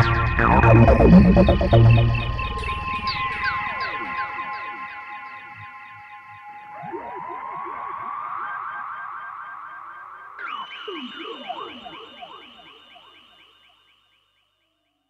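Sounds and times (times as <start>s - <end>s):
held synthesizer tone: 0.0s - 3.0s
higher held tone: 0.0s - 3.1s
synthesizer falling pitch sweeps: 0.0s - 4.7s.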